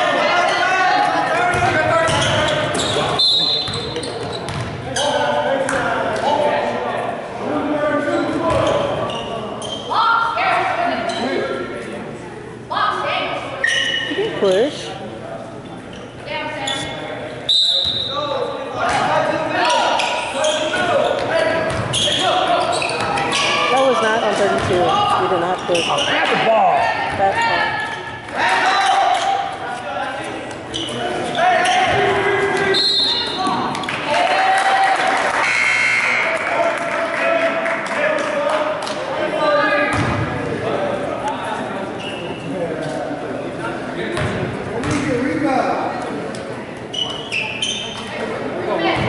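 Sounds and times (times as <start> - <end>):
basketball bouncing on wooden court: 4.5 - 4.8, 24.6 - 24.8, 44.2 - 45.0.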